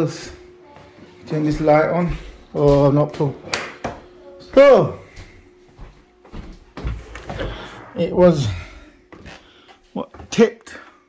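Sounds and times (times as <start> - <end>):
footsteps thumping: 0.8 - 4.1, 5.1 - 10.3.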